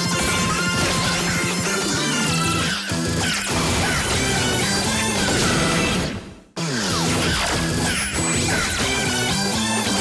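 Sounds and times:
sped-up pitched-up rock theme song: 0.0s - 10.0s.

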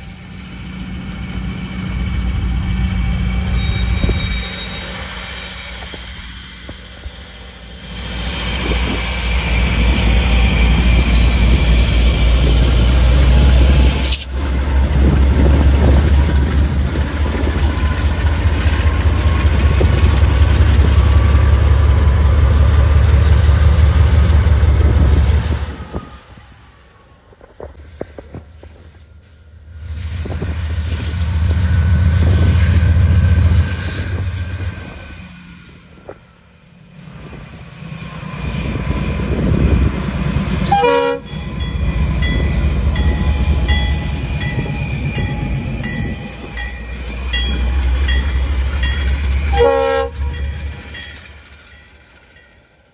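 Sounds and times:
locomotive engine rumble: 0.0s - 52.9s
passing train: 0.0s - 52.9s.

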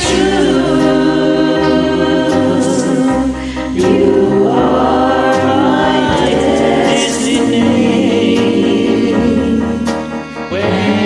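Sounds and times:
backing track chords: 0.0s - 11.0s
person singing karaoke: 0.0s - 11.0s.

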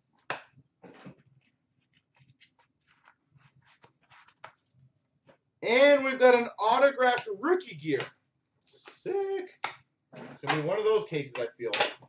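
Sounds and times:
soft ticks and rustles of handling: 1.1s - 5.4s.

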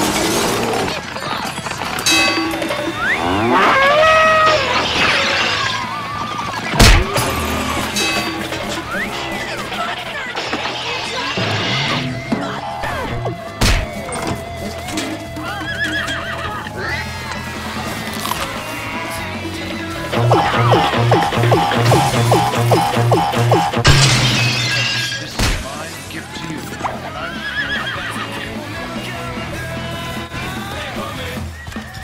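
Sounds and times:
background music: 1.8s - 10.8s, 11.4s - 32.0s
cartoon cow moo: 3.0s - 4.8s.

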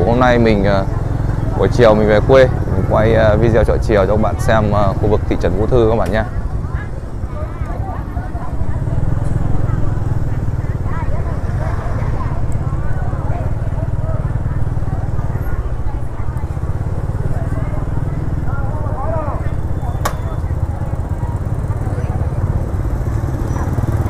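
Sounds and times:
chatter of vendors and shoppers: 0.0s - 24.0s
scooter engines rumbling: 0.0s - 24.0s.

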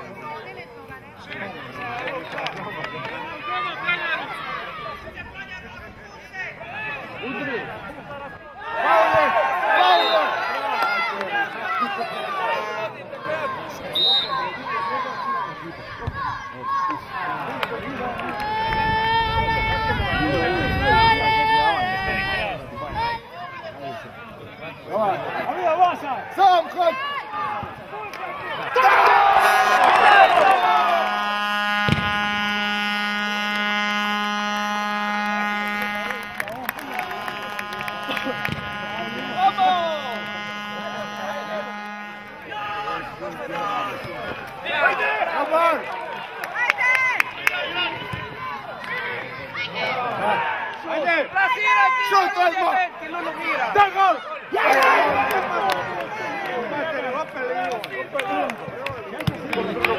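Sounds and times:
steady buzzing tone: 30.8s - 44.3s.

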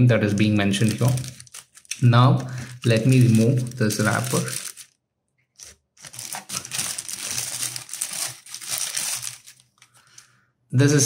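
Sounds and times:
plastic wrapper crinkling: 0.2s - 10.3s.

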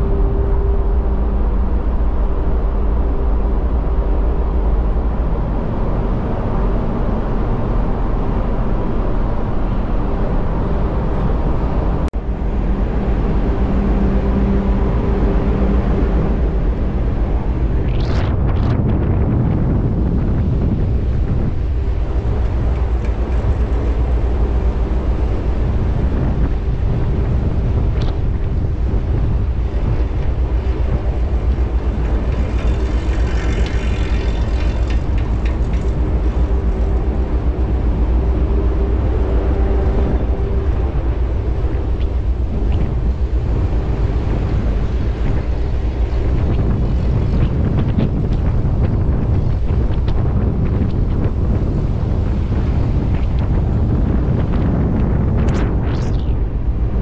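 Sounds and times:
low hum: 0.0s - 57.0s
ship engine rumble: 0.0s - 57.0s
wind buffeting microphone: 0.0s - 57.0s.

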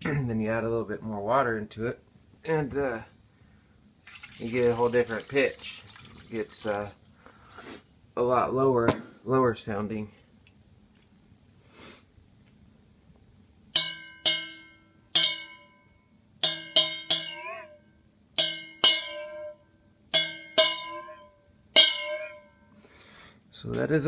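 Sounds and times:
knife striking steel bowl ringing: 13.8s - 17.7s, 18.4s - 22.6s.

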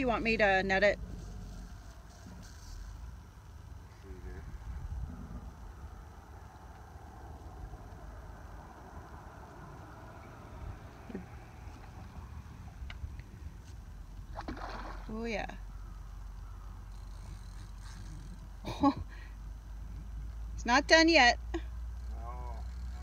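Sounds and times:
steady hiss: 1.0s - 12.8s
wind rumble on microphone: 4.3s - 15.5s.

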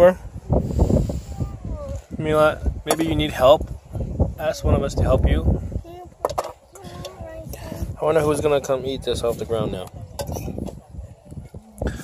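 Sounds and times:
faint voices: 4.4s - 12.0s.

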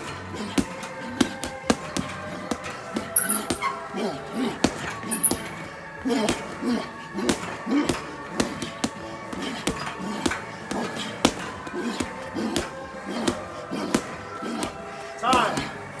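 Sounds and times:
gloves hitting punching bag: 0.0s - 16.0s
music: 0.0s - 16.0s.

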